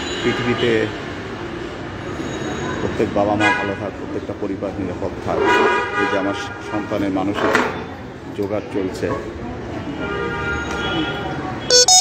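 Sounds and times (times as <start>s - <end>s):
vehicle horn toot: 11.7s - 12.0s.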